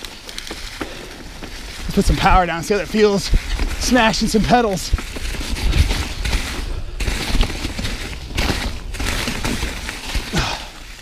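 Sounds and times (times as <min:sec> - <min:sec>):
mountain bike rattling on rough trail: 0:00.0 - 0:11.0.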